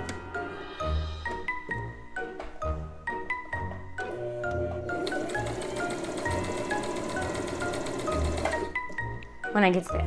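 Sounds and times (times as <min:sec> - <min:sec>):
sewing machine running: 0:04.9 - 0:08.7.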